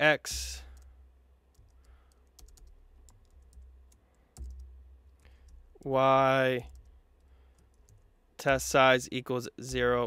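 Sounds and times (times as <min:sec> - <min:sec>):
computer keyboard key clicks: 0:04.3 - 0:05.6.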